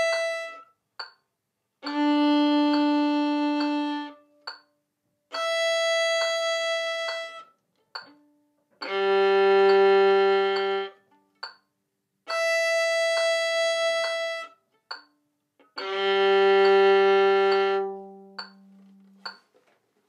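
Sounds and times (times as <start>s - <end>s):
violin long bowed notes: 0.0s - 0.7s, 1.8s - 4.4s, 5.3s - 7.5s, 8.2s - 11.2s, 12.2s - 14.7s, 15.7s - 19.3s
soft metronome ticking: 0.0s - 19.7s.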